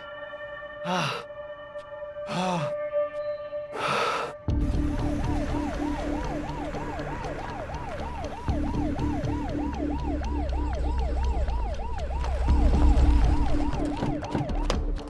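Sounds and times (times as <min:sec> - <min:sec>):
police siren yelping: 0:05.0 - 0:15.0.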